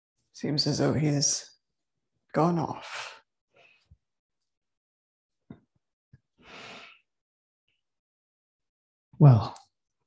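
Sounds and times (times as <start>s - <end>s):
woman breathing: 6.4s - 7.1s.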